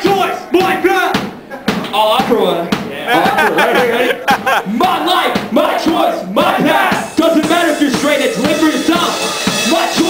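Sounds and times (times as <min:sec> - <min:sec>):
hard drum hits: 0:00.0 - 0:03.6, 0:04.4 - 0:10.0
hardcore band playing: 0:00.0 - 0:10.0
shouted vocals: 0:03.0 - 0:10.0.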